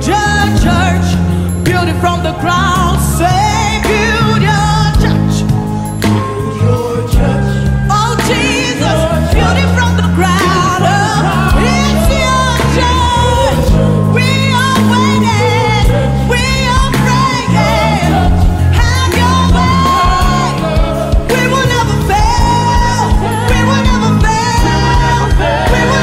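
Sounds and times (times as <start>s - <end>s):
bass line: 0.0s - 26.0s
woman singing gospel: 0.0s - 26.0s.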